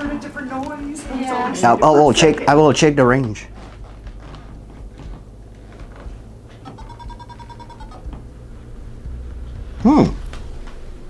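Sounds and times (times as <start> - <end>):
rapid electronic beeps: 6.6 - 8.1.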